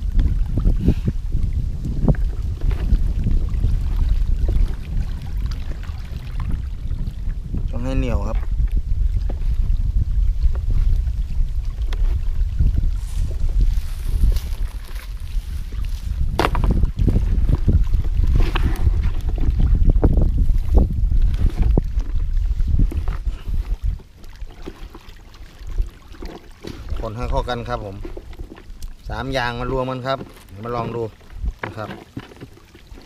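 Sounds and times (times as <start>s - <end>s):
wind buffeting microphone: 0.0s - 31.9s
hand kneading wet groundbait: 25.8s - 33.0s.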